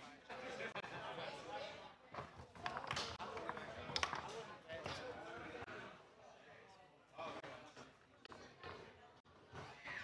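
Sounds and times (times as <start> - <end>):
background chatter: 0.0 - 10.0
foosball ball clacks: 2.5 - 4.4.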